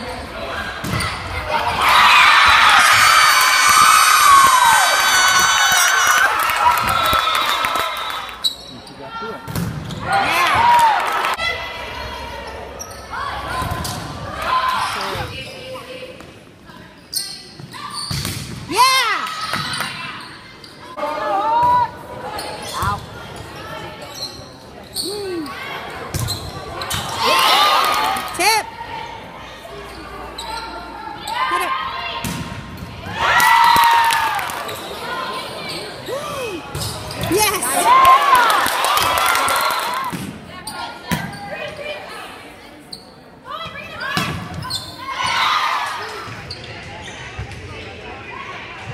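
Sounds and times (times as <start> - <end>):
shoes squeaking on floor: 8.4 - 9.1, 24.0 - 25.6, 29.8 - 31.6, 44.0 - 45.1.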